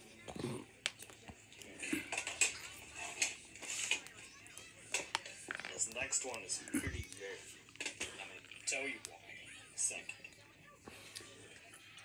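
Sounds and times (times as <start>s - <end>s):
faint indistinct voice: 0.0s - 12.0s.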